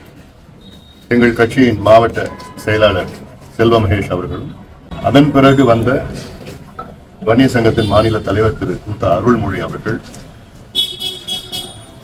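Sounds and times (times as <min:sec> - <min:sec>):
vehicle horn: 0:10.7 - 0:12.0.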